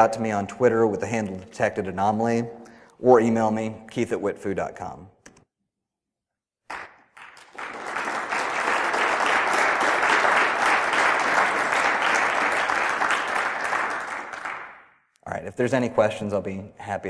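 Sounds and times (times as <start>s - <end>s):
audience applauding: 6.7s - 14.8s.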